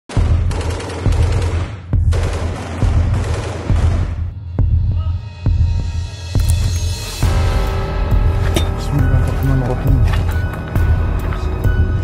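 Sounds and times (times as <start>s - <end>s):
low throbbing beat: 0.2s - 12.0s.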